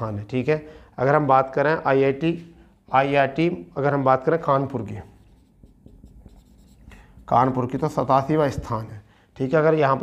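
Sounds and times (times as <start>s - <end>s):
marker writing on whiteboard: 4.8s - 8.8s.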